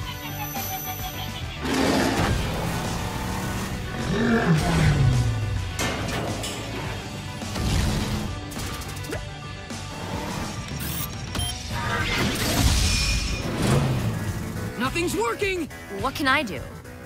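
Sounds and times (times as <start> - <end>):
cartoon action music: 0.0 - 16.6
mechanical clanking: 5.6 - 8.2.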